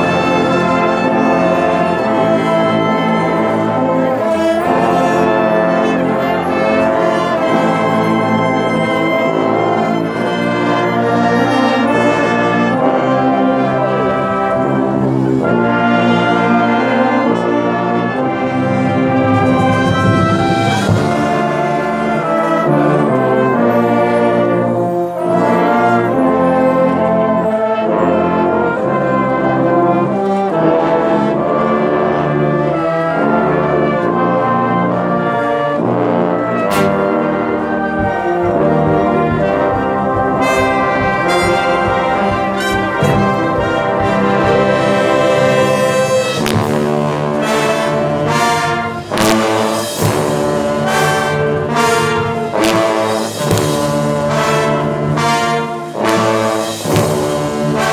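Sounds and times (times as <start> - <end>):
brass band sustained chords: 0.0 - 57.9
sharp percussion strokes: 18.0 - 27.0, 36.7 - 57.9.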